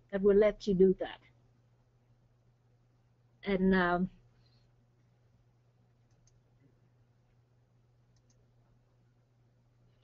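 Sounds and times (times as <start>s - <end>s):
steady low hum: 0.0s - 10.0s
faint clicks: 6.0s - 6.4s, 8.1s - 8.5s.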